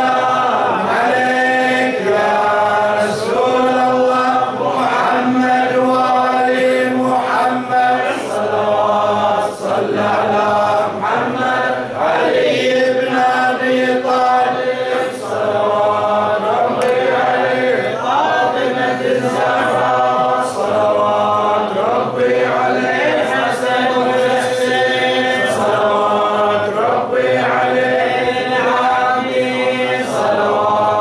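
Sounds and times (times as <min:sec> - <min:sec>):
man chanting devotional poetry: 0:00.0 - 0:11.8, 0:12.4 - 0:31.0.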